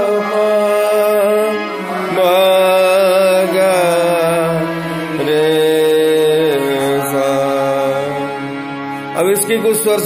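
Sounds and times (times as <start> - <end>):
harmonium: 0.0 - 10.0
person singing long notes: 0.0 - 10.0.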